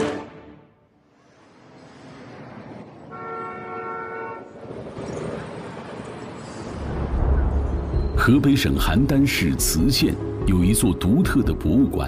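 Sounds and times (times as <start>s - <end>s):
traffic rumble: 1.1s - 11.6s
train horn chord: 3.1s - 4.6s.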